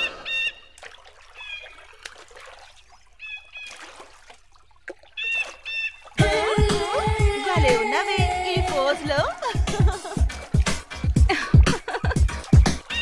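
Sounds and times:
faint lapping water: 0.0 - 13.0.

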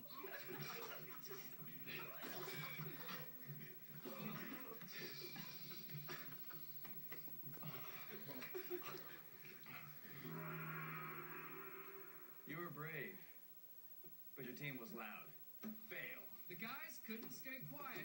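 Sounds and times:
men's voices on television: 0.0 - 10.4, 12.4 - 13.4, 14.3 - 18.0
steady held tone: 10.2 - 12.7.

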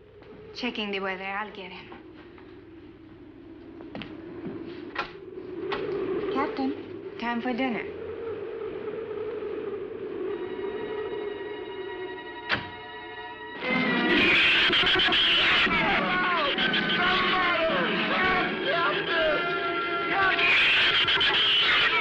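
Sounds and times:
low background noise: 0.0 - 10.2
tense music with falling notes: 2.0 - 21.4.

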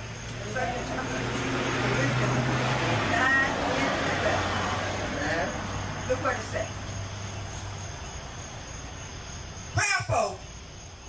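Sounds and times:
steady background hiss: 0.0 - 11.0
person calling over microphone: 9.8 - 10.4.

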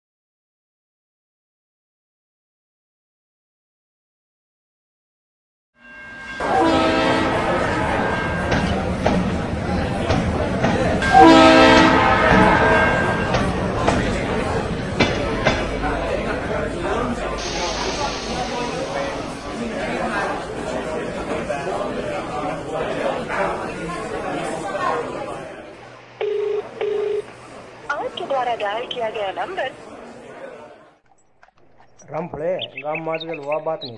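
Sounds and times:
train rumbling past: 5.8 - 26.2
train horn blast: 6.4 - 8.6, 11.0 - 13.5
crowd chatter: 6.4 - 33.9
telephone ringback tone: 26.2 - 27.3.

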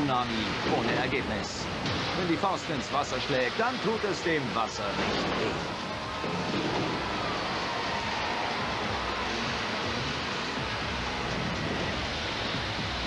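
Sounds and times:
background music: 0.0 - 13.0
rush of arena noise: 0.0 - 13.0.

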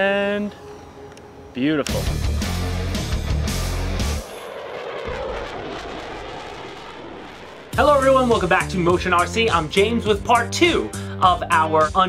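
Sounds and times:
low rumble: 2.0 - 10.4
rushing noise: 2.9 - 9.7.

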